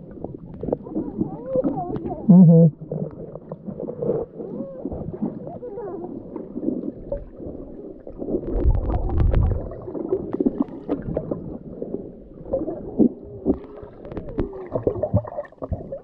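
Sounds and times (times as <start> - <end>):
underwater gurgling: 0.0 - 16.0.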